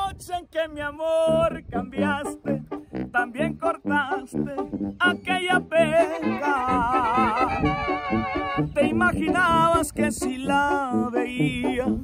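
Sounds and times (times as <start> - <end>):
banda brass music: 1.5 - 12.0
melody with heavy vibrato: 3.8 - 8.8.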